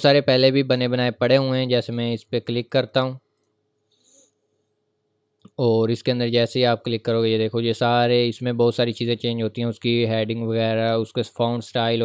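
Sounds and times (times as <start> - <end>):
computer mouse click: 3.3 - 3.6.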